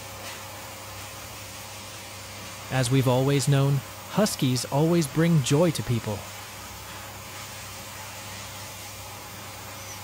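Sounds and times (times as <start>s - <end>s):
grooming blower hissing: 0.0s - 10.0s.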